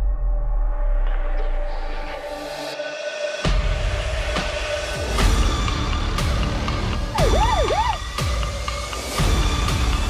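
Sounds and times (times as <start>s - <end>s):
dark electronic score: 6.8s - 8.3s
deep pulsing bass: 7.1s - 8.2s
wailing siren-like tone: 7.2s - 8.1s.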